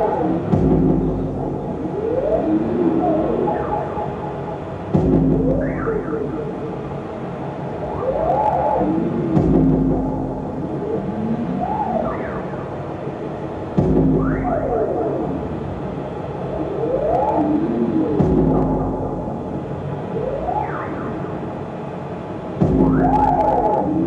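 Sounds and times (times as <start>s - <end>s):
sliding electronic tones: 0.0s - 6.9s, 22.6s - 24.0s
low hum and drone: 0.0s - 24.0s.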